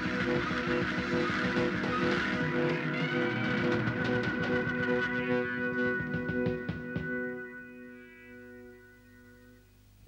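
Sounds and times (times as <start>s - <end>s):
held rock chords: 0.0s - 9.0s
distorted electric guitar: 0.0s - 9.5s.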